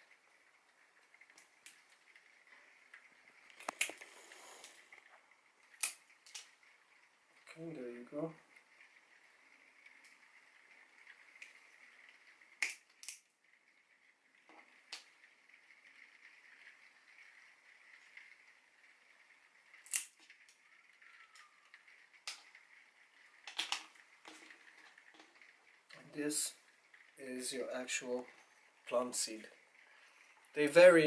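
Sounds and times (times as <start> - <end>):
pliers cracking pit shell: 19.8 - 20.1.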